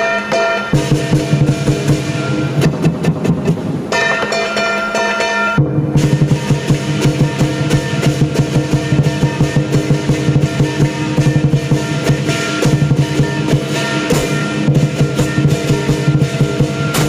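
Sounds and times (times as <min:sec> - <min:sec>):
ringing cymbals: 0:00.0 - 0:02.9, 0:03.8 - 0:17.0
big drum beating fast rhythm: 0:00.0 - 0:17.0
gong: 0:00.0 - 0:17.0.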